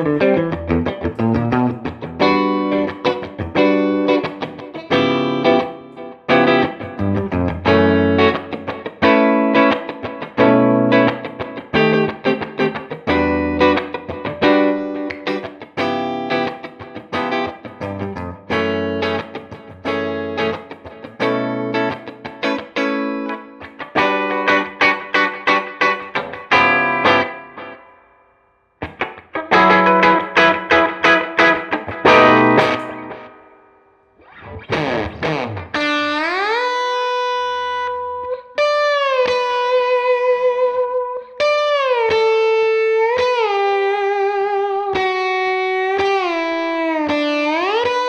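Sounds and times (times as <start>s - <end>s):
electric guitar strummed chords: 0.0s - 28.1s, 28.8s - 48.0s.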